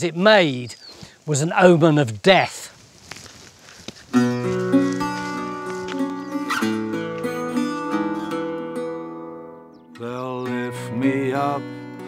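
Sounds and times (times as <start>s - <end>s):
plucked acoustic string chords: 4.2s - 12.0s.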